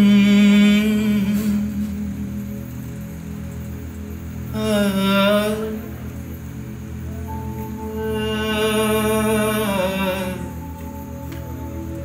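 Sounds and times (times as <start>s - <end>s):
person singing long held note: 0.0s - 2.7s, 4.5s - 6.1s, 7.2s - 12.0s.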